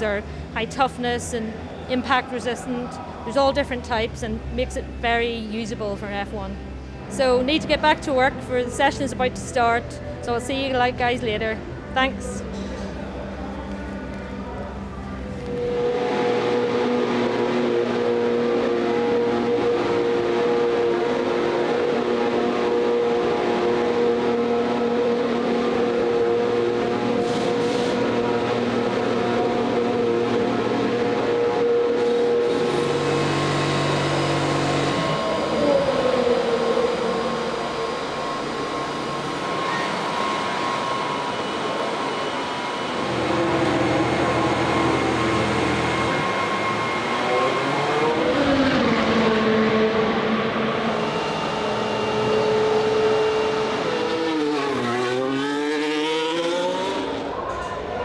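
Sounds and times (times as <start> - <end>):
racing car engines revving: 10.6 - 58.0.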